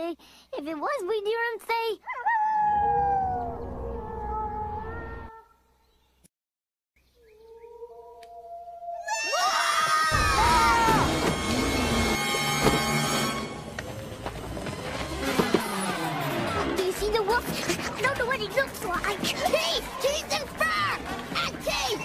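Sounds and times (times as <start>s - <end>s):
wavering howl-like call: 2.1s - 5.6s, 7.2s - 10.1s
screams: 9.0s - 13.2s
orchestral music: 10.2s - 17.3s.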